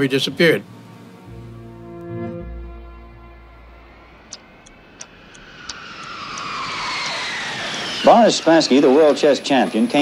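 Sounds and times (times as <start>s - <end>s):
jet engine whine: 0.8s - 10.0s.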